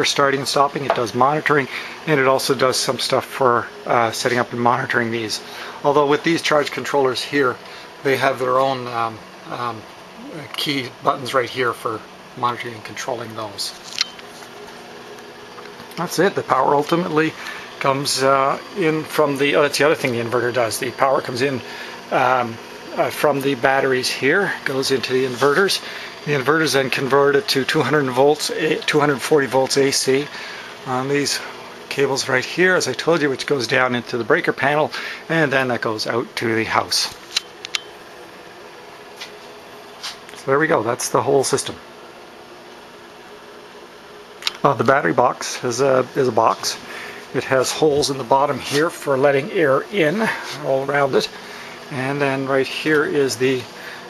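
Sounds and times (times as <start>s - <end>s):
faint electrical hum: 0.0s - 54.0s.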